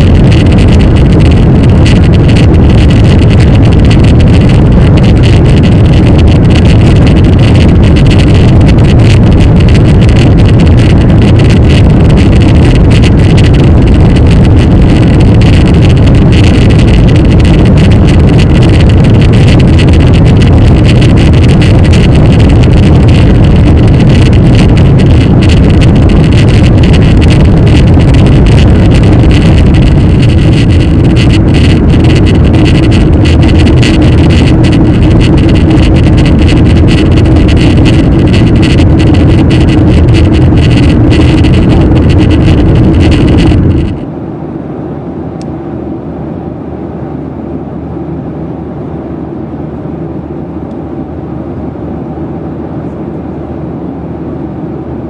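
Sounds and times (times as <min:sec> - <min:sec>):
jet engine cabin rumble: 0:00.0 - 0:55.0
quiet cabin hum: 0:00.0 - 0:55.0.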